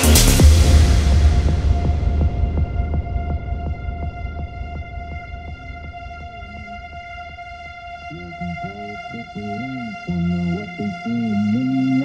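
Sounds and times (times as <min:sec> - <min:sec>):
deep bass hum: 0:00.0 - 0:12.0
held synth note: 0:06.0 - 0:12.0.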